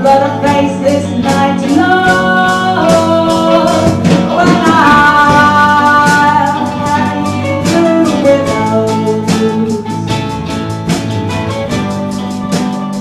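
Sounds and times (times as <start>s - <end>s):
drum kit: 0.0s - 13.0s
electric guitar: 0.0s - 13.0s
mandolin: 0.0s - 13.0s
sliding lead melody: 0.0s - 13.0s.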